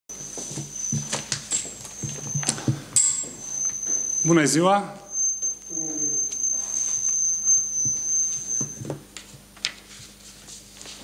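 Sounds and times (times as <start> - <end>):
high-pitched whine: 0.1 - 9.1
footsteps and knocks at lectern: 0.3 - 4.0.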